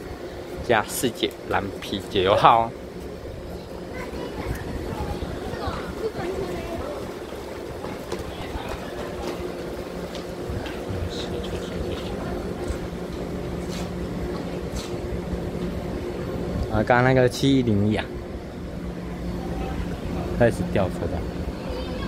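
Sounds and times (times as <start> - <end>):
trains humming at platform: 0.0 - 22.0
faint voices of people: 3.4 - 13.9, 19.0 - 22.0.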